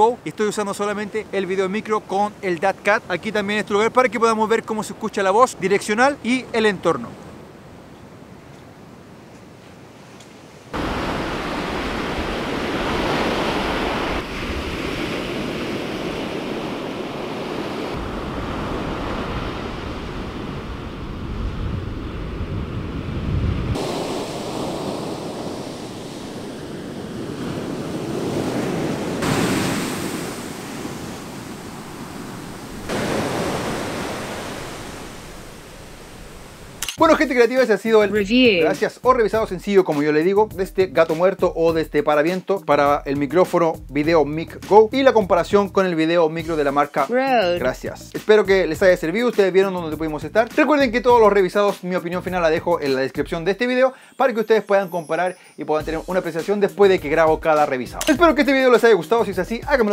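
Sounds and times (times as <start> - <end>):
ocean surf washing onto beach: 0.0 - 38.4
wind: 0.0 - 59.9.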